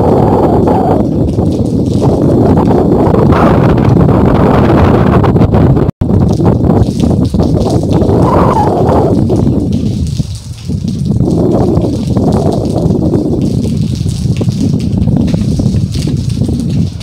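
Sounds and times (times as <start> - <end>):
rain falling: 0.0 - 5.0, 6.0 - 17.0
wind gusting on microphone: 0.0 - 17.0.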